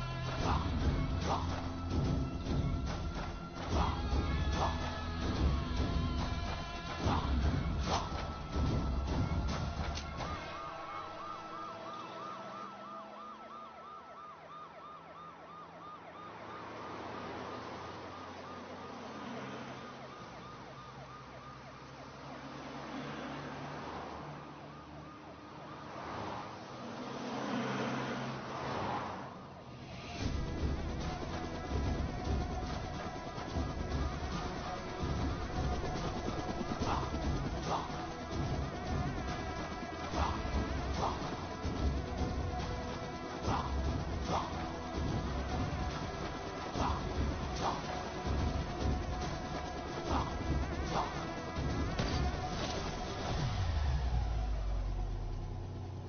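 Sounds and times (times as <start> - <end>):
dramatic music with heavy beat: 0.0 - 11.6, 30.2 - 54.6
police siren warbling: 10.0 - 26.9, 30.0 - 55.6.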